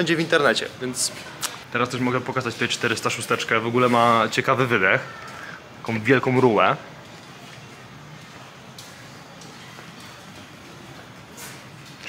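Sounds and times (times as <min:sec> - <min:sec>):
indoor hall background noise: 0:00.0 - 0:12.0.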